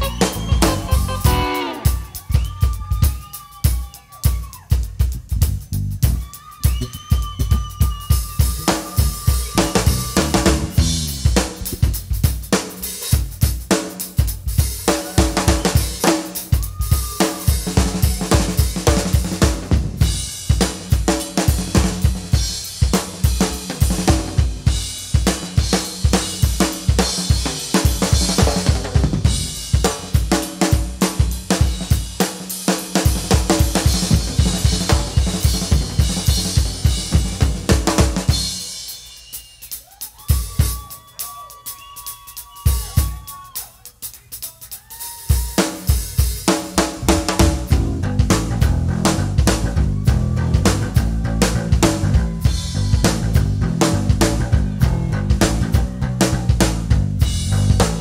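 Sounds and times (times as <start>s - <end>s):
drum solo on a full kit: 0.0s - 58.0s.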